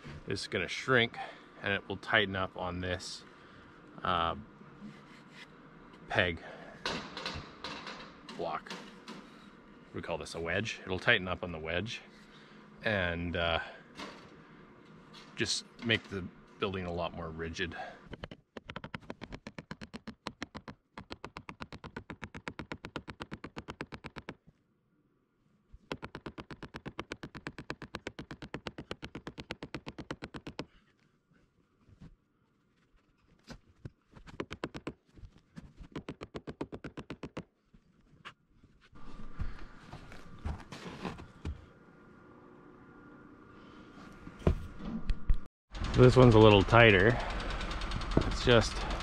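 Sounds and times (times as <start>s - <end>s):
mallet striking wooden wedge: 18.2s - 24.4s, 25.9s - 30.7s
rustling and handling noise: 25.6s - 36.1s, 37.5s - 41.8s.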